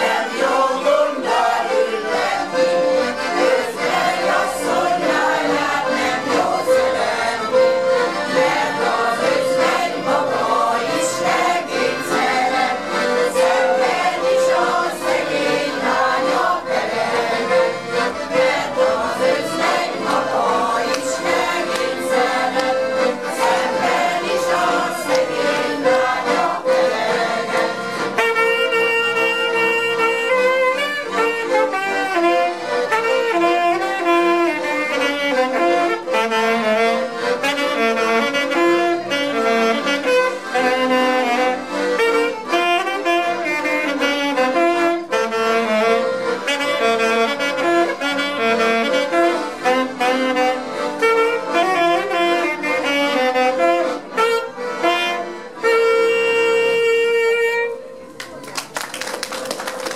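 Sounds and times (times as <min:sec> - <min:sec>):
choir singing: 0:00.0 - 0:28.2
accordions playing: 0:00.0 - 0:59.9.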